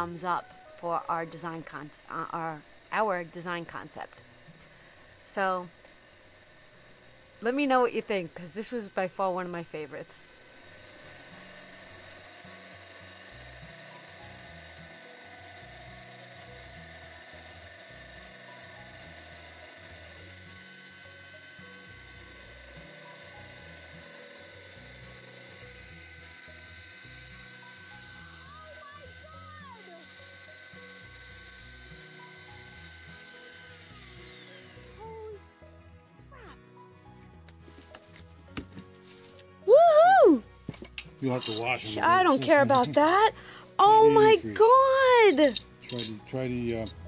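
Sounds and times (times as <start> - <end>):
drill press grinding glass: 0.0 - 47.0.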